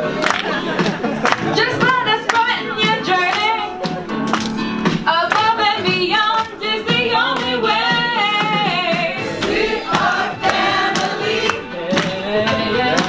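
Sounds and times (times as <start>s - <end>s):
steady beat: 0.0s - 13.0s
group of voices singing: 5.1s - 13.0s.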